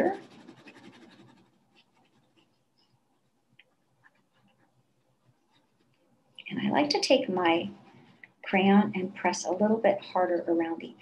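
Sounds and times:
crayon scratching on paper: 0:00.0 - 0:03.4, 0:04.1 - 0:06.0.

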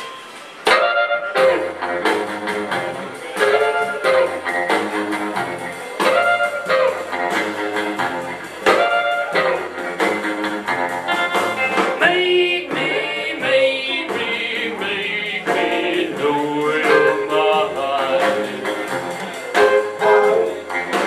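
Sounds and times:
rockabilly trio playing: 0:00.0 - 0:21.0.

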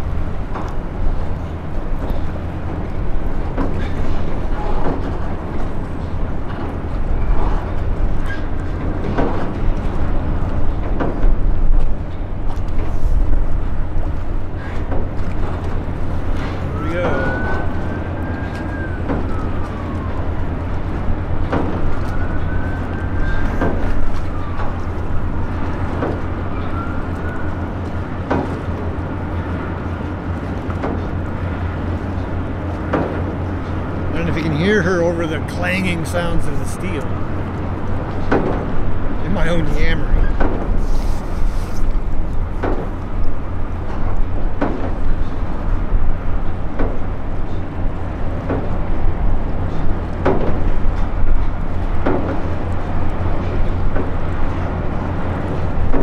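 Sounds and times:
wind rumble on microphone: 0:00.0 - 0:56.0.

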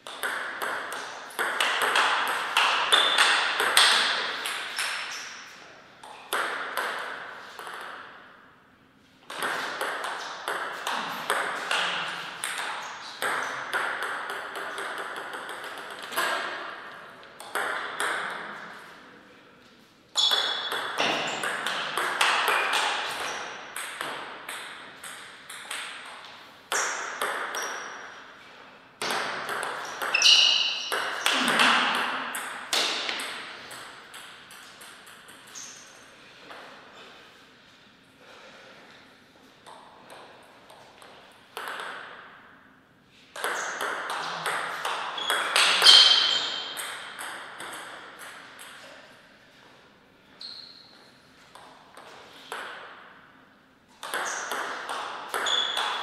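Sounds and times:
ball bouncing on table: 0:00.0 - 0:05.2, 0:06.0 - 0:08.0, 0:09.3 - 0:16.5, 0:20.2 - 0:27.9, 0:29.0 - 0:35.8, 0:39.6 - 0:42.2, 0:43.4 - 0:48.9, 0:54.0 - 0:56.0
table tennis ball hitting rackets: 0:00.0 - 0:08.3, 0:09.2 - 0:18.9, 0:20.2 - 0:28.3, 0:29.0 - 0:36.8, 0:39.6 - 0:42.5, 0:43.3 - 0:49.0, 0:51.5 - 0:53.3, 0:53.9 - 0:56.0.

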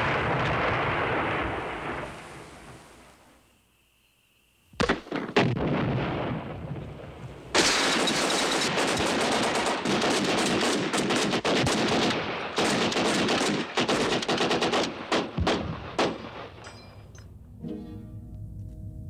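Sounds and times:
rifle gunfire: 0:04.8 - 0:06.1, 0:07.6 - 0:16.7.

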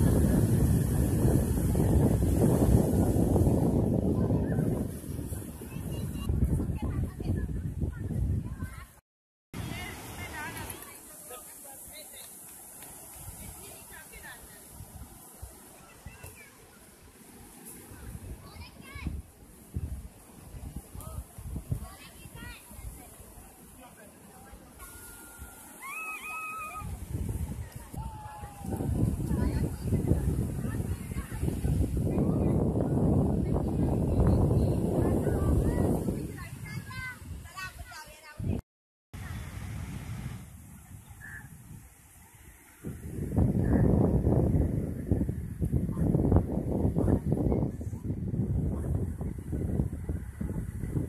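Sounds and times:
waves breaking on shore: 0:00.0 - 0:06.6, 0:09.5 - 0:51.0
surf washing over sand: 0:00.0 - 0:09.0, 0:09.6 - 0:38.6, 0:39.2 - 0:51.0
wind buffeting microphone: 0:00.0 - 0:09.0, 0:17.8 - 0:23.2, 0:26.4 - 0:38.6, 0:39.2 - 0:51.0.

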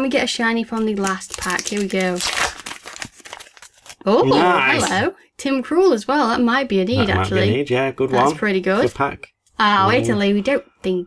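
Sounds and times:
foil packet tearing and crinkling: 0:00.8 - 0:04.0.

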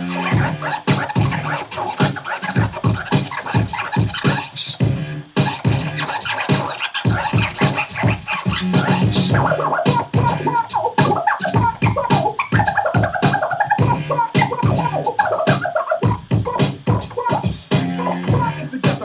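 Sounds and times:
record scratching on a turntable: 0:00.0 - 0:19.0.

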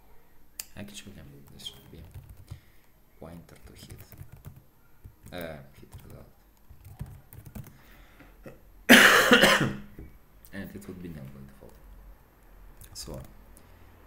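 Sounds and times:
keyboard typing: 0:01.5 - 0:07.8, 0:12.8 - 0:13.4
person coughing: 0:08.4 - 0:09.9.

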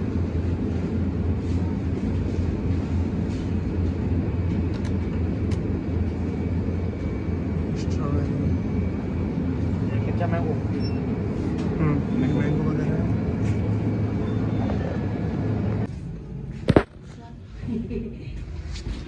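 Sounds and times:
refrigerated cooler humming: 0:00.0 - 0:17.3.

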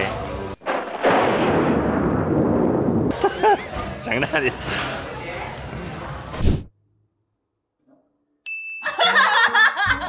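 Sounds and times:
explosion boom with rumble: 0:00.6 - 0:03.2.

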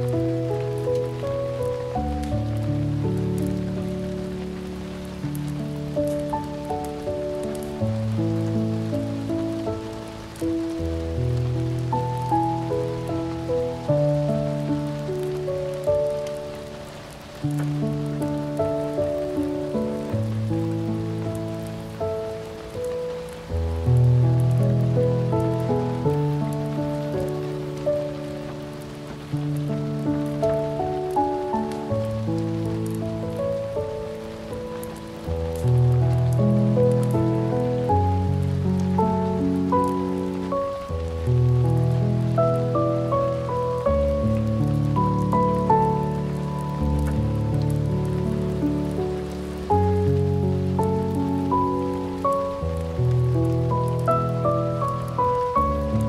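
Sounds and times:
rain pattering: 0:00.0 - 0:56.0
slow piano piece: 0:00.0 - 0:56.0.

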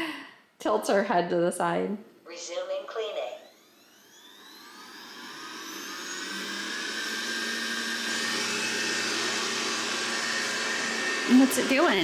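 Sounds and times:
robot vacuum motor whine: 0:02.3 - 0:12.0.

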